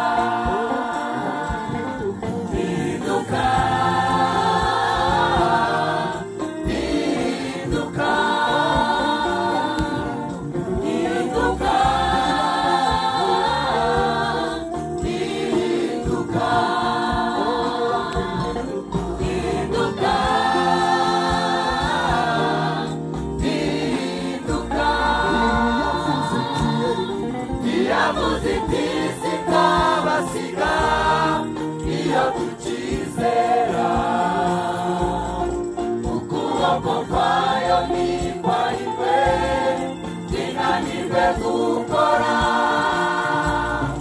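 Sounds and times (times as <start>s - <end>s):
gospel choir singing: 0.0s - 44.0s.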